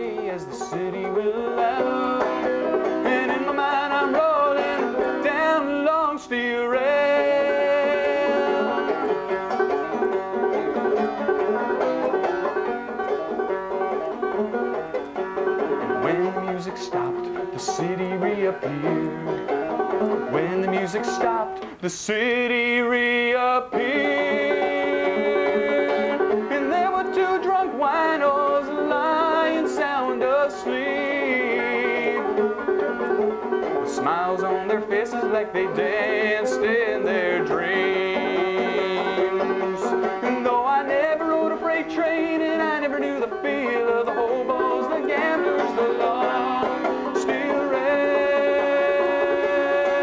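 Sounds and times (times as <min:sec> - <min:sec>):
man singing: 0:00.0 - 0:09.3, 0:15.7 - 0:32.6, 0:33.8 - 0:50.0
banjo picking: 0:00.0 - 0:50.0.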